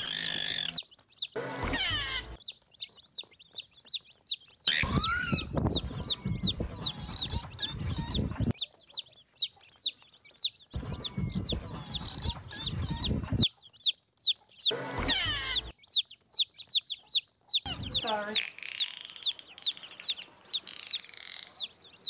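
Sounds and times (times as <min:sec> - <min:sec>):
chicks peeping: 0:00.0 - 0:22.0.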